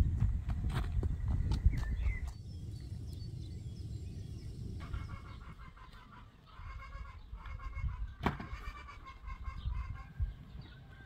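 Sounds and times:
farmyard animals calling: 0:04.8 - 0:11.0.

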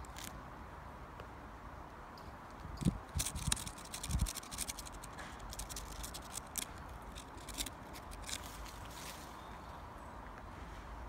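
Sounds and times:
foliage rustling and scratching: 0:02.8 - 0:09.7.

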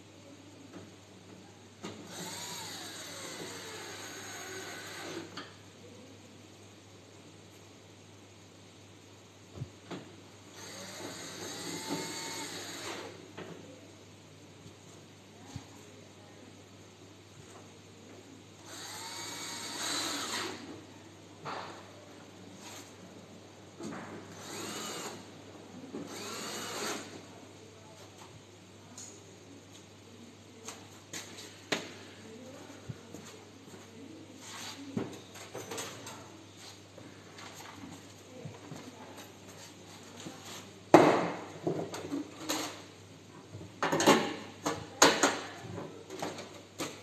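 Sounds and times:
cordless drill driving a screw: 0:02.1 - 0:05.3, 0:10.6 - 0:13.1, 0:18.7 - 0:20.6, 0:24.4 - 0:25.2, 0:26.1 - 0:27.1.

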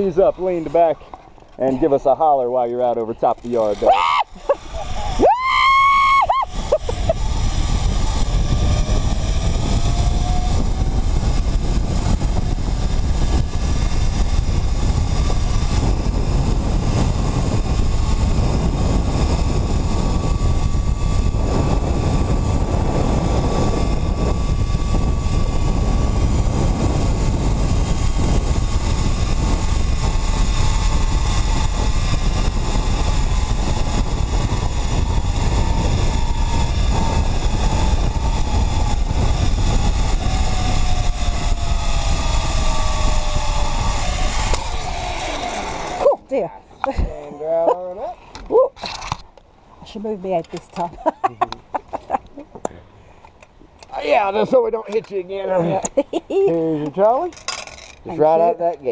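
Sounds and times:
wind buffeting microphone: 0:00.0 - 0:52.4
zipline trolley whine: 0:00.0 - 0:56.6, 0:57.2 - 0:58.5.

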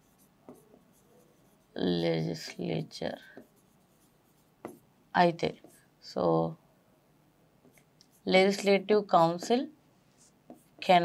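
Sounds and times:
stylus writing on screen: 0:00.0 - 0:05.9, 0:07.6 - 0:11.0
woman speaking: 0:01.8 - 0:03.4, 0:05.2 - 0:06.6, 0:08.2 - 0:09.8, 0:10.8 - 0:11.0.

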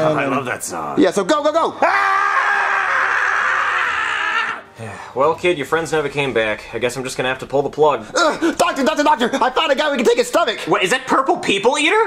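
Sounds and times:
man screaming in pain: 0:01.8 - 0:04.7.

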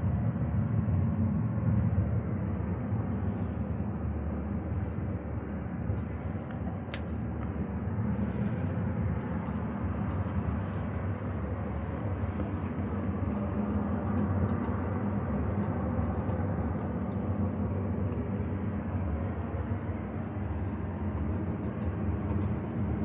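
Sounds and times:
cable car rumble and hiss: 0:00.0 - 0:23.0.

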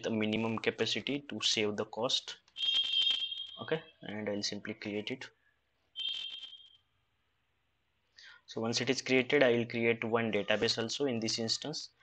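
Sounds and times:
buzzy electronic beep: 0:06.0 - 0:06.7.

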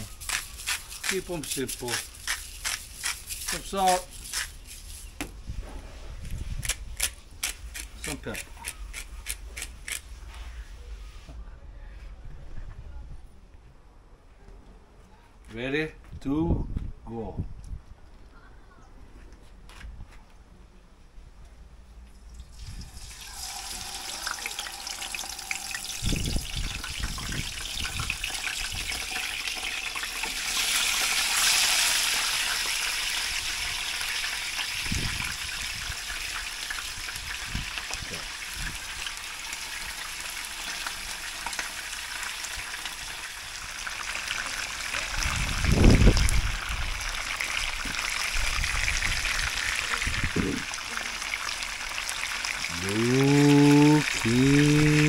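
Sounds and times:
fish sizzling in hot oil: 0:22.5 - 0:52.7.

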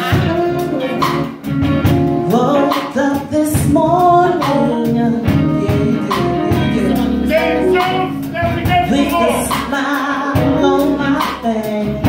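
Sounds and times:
woman singing into microphone: 0:00.0 - 0:01.3, 0:02.3 - 0:12.0
live band playing: 0:00.0 - 0:12.0.

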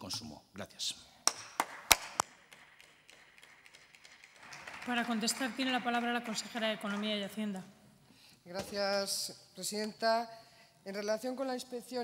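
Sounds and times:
people clapping: 0:01.2 - 0:07.6.

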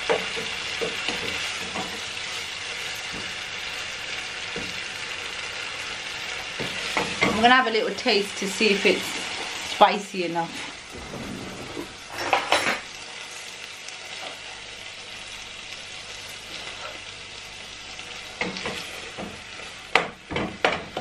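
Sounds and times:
food sizzling in a pot: 0:00.0 - 0:21.0
handling noise: 0:10.8 - 0:12.9.

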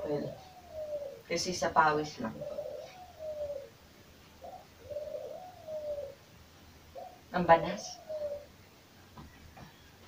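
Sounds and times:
bird low cooing call: 0:00.0 - 0:01.3, 0:02.2 - 0:03.8, 0:04.4 - 0:06.2, 0:06.9 - 0:08.6.

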